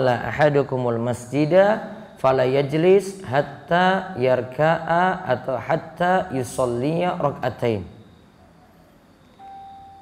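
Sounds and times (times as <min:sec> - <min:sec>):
steady beep tone: 0:00.0 - 0:10.0.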